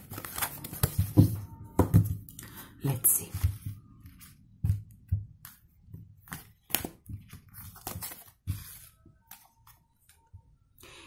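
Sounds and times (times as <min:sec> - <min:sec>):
cards clicking and rustling: 0:00.0 - 0:01.3, 0:06.2 - 0:09.8.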